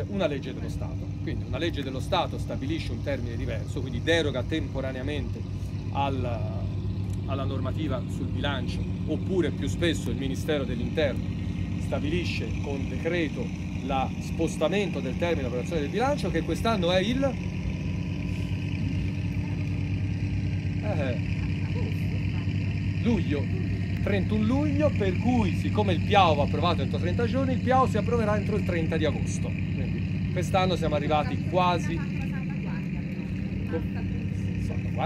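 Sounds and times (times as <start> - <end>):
low engine drone: 0.0 - 35.0
faint voices: 18.1 - 35.0.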